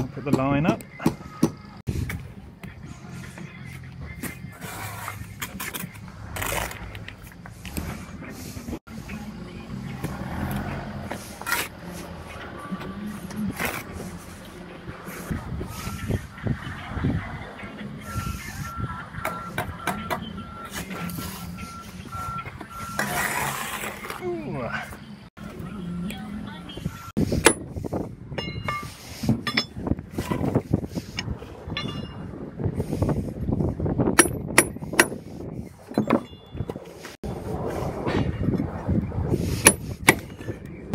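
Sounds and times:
trowel scraping on concrete blocks: 0:04.2 - 0:08.8, 0:10.5 - 0:12.4, 0:22.9 - 0:24.2, 0:27.2 - 0:33.5, 0:39.3 - 0:40.5
reversing alarm beeping: 0:18.0 - 0:23.2.

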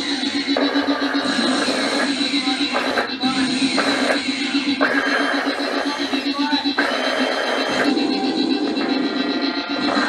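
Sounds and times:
fast-pulsing low drone: 0:00.0 - 0:10.0
steady high whine: 0:00.0 - 0:10.0.

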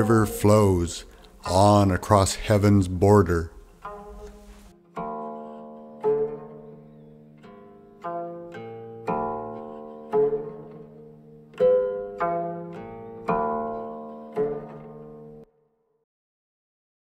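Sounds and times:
plucked string instrument notes: 0:00.0 - 0:15.5.

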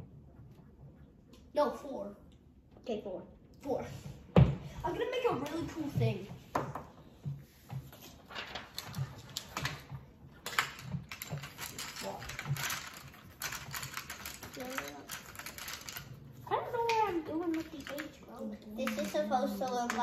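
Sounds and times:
child's voice: 0:04.8 - 0:06.4, 0:14.5 - 0:15.1, 0:16.5 - 0:20.0
paper rustling: 0:07.6 - 0:16.9.

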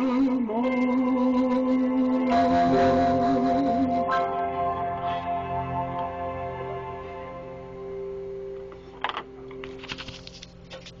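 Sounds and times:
held chord of backing music: 0:00.0 - 0:08.7.

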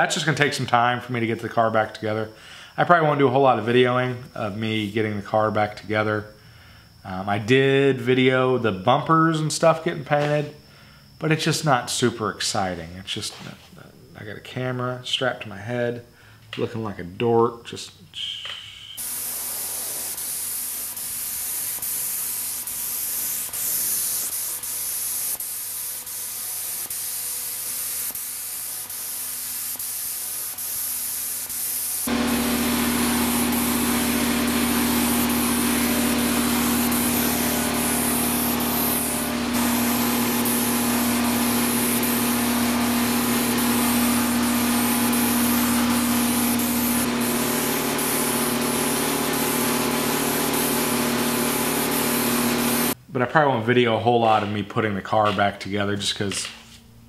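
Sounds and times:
spray gun hissing: 0:19.0 - 0:53.0
low motor hum: 0:32.1 - 0:53.0.

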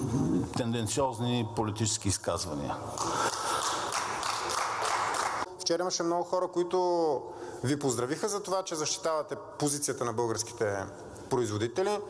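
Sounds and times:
crowd clapping: 0:03.0 - 0:05.5.

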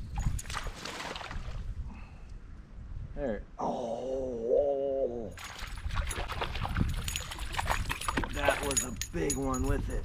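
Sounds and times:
water splashing and thrashing: 0:00.0 - 0:01.8, 0:05.4 - 0:09.0.

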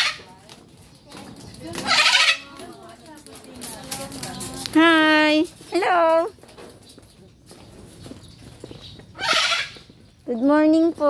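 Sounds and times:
macaw squawk: 0:01.8 - 0:02.6, 0:09.2 - 0:09.9.

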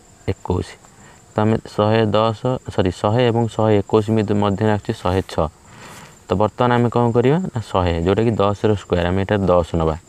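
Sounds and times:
man speaking: 0:00.2 - 0:10.0.

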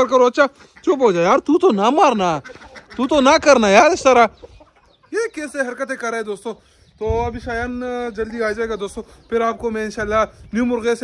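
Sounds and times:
rooster clucking: 0:02.1 - 0:06.2.

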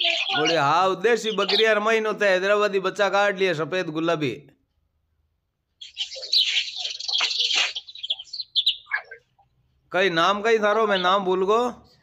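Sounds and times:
birds chirping: 0:00.0 - 0:02.5, 0:05.8 - 0:11.7.

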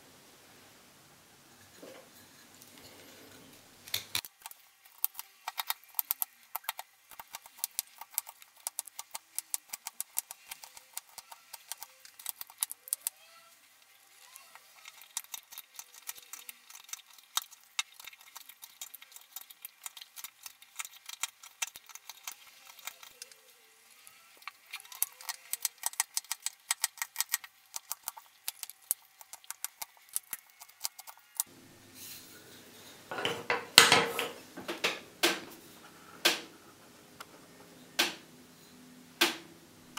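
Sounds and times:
knife carving wood: 0:03.9 - 0:13.1.

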